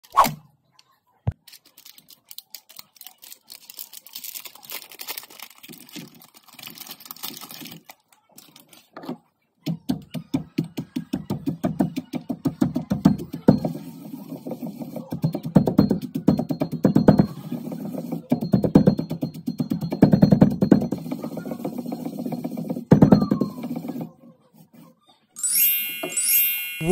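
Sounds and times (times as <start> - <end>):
packet crinkling: 1.3 - 8.8
cookies rustling into mortar: 1.3 - 9.1.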